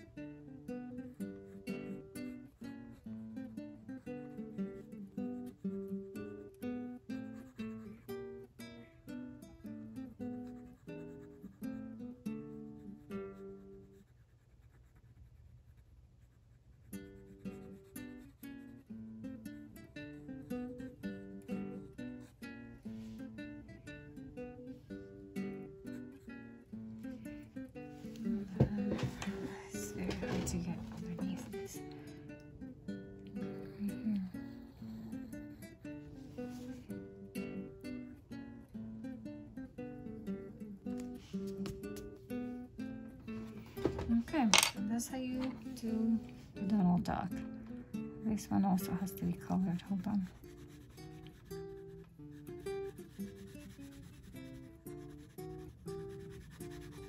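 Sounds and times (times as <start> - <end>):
plucked acoustic guitar music: 0.0 - 14.0, 16.9 - 57.0.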